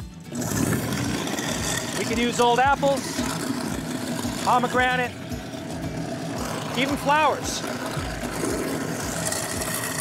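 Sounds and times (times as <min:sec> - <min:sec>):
waste disposal motor running: 0:00.0 - 0:10.0.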